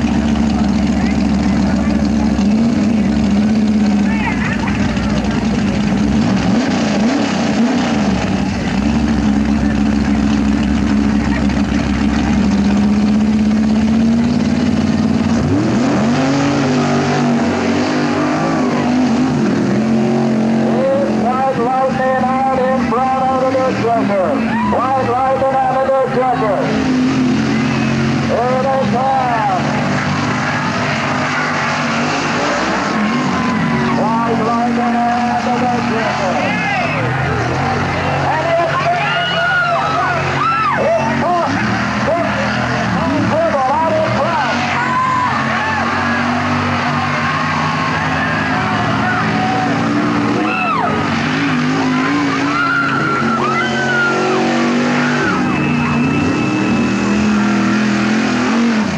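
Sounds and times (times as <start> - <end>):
voices: 0.0 - 6.2, 20.6 - 57.4
truck engines droning: 0.0 - 58.9.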